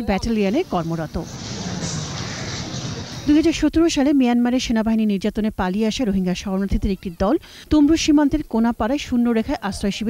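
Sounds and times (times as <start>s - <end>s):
background hiss: 0.1s - 6.4s.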